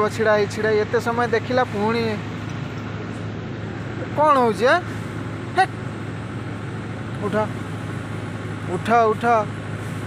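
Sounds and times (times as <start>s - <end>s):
tractor engine drone: 0.0s - 10.0s.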